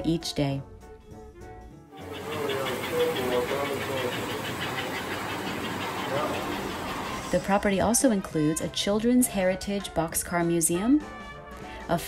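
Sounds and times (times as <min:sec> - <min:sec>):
model train whirring and clattering: 0:02.0 - 0:07.7.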